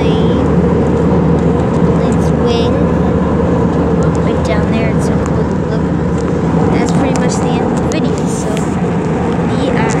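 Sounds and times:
voices talking: 0:00.0 - 0:00.5, 0:02.0 - 0:03.3, 0:04.0 - 0:08.8, 0:09.5 - 0:10.0
jet engines droning: 0:00.0 - 0:10.0
rushing air: 0:05.3 - 0:10.0.

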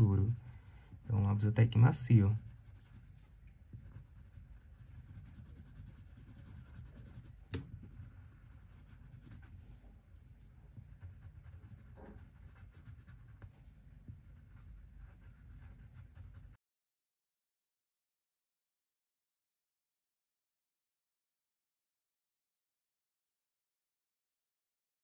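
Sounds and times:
coloured pencil scratching on paper: 0:00.0 - 0:09.8, 0:10.4 - 0:16.6
sharp pencil tap: 0:07.5 - 0:07.8.

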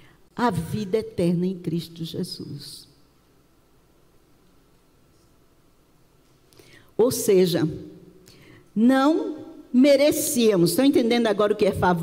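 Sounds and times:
soft breath: 0:06.5 - 0:07.0.

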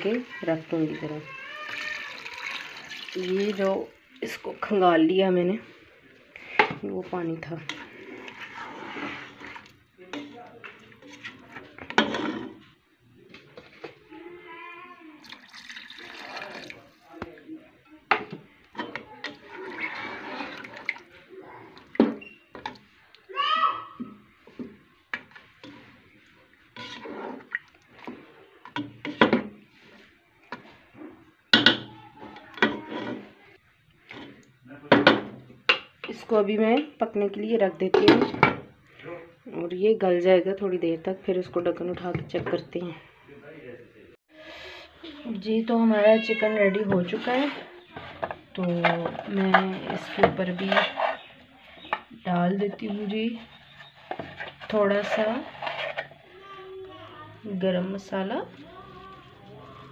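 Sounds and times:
water poured into a pan: 0:00.0 - 0:04.4, 0:15.2 - 0:17.3, 0:19.3 - 0:21.2.

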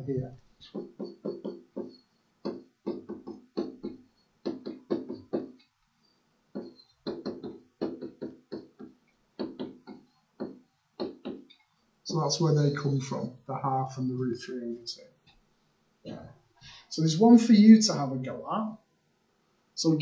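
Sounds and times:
stylus tapping and scraping screen: 0:00.1 - 0:11.8.

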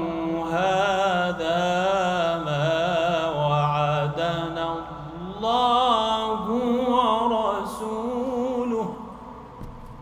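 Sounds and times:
man chanting melodically: 0:00.0 - 0:09.2.

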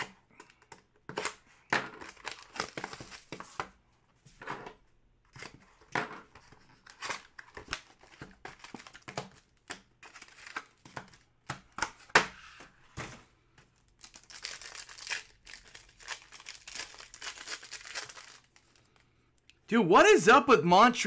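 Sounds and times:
plastic shrink wrap tearing and crinkling: 0:02.0 - 0:03.3, 0:13.9 - 0:18.9.

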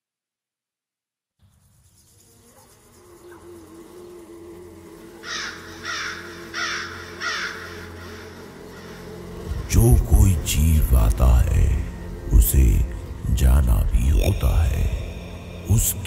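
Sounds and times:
low drone: 0:03.2 - 0:16.0
crow cawing: 0:05.2 - 0:09.5.

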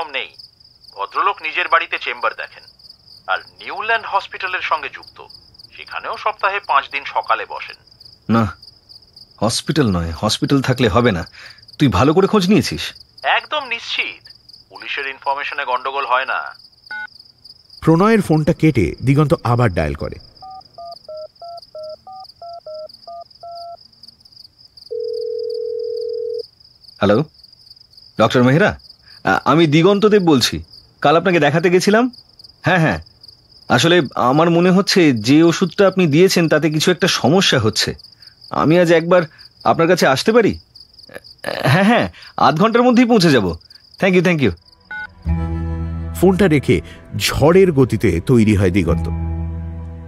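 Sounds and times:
crickets trilling: 0:00.0 - 0:45.2
person speaking: 0:03.3 - 0:08.6, 0:09.4 - 0:16.6, 0:17.8 - 0:20.3, 0:45.3 - 0:49.3
telephone ringing tone: 0:20.4 - 0:23.8, 0:24.9 - 0:26.4, 0:44.9 - 0:45.2
touch-tone keypad beeps: 0:20.4 - 0:23.8, 0:44.9 - 0:45.1.

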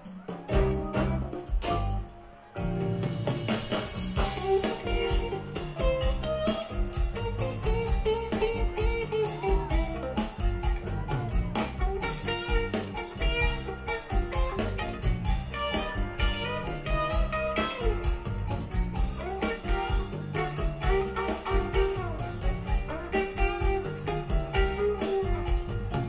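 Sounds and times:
bass: 0:00.0 - 0:26.0
electric guitar lines: 0:00.0 - 0:26.0
steady drum beat: 0:00.0 - 0:26.0.

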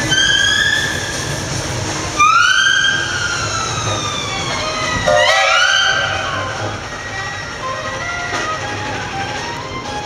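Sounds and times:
steam locomotive whistle: 0:00.0 - 0:01.4, 0:02.2 - 0:09.6.

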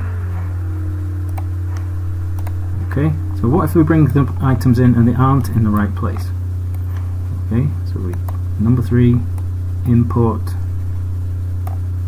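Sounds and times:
low electrical hum: 0:00.0 - 0:12.0
computer mouse click: 0:02.4 - 0:02.6.

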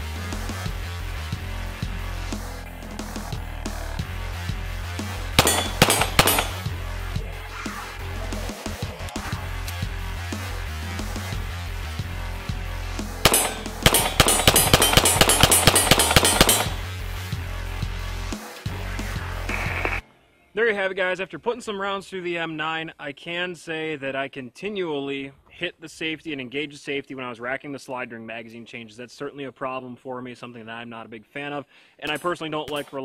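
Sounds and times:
music with steady beat: 0:00.0 - 0:20.0
pistol shots: 0:05.4 - 0:06.7, 0:13.2 - 0:16.9.

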